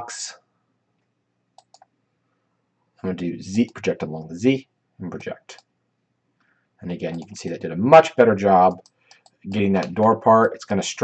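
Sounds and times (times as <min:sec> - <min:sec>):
computer mouse clicks: 0:01.0 - 0:02.0, 0:07.1 - 0:07.5, 0:08.7 - 0:10.2.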